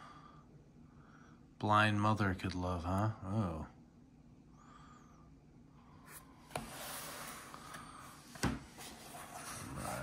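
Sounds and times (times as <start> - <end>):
cardboard rubbing and sliding: 6.1 - 10.0.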